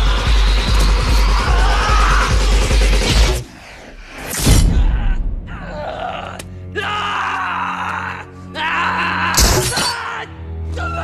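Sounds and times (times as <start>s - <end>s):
man screaming in agony: 1.4s - 2.5s, 4.7s - 11.0s.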